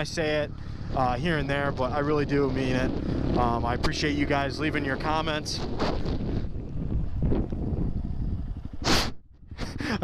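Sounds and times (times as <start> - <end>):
motorcycle engine running: 0.0 - 9.5
wind on microphone: 0.0 - 10.0.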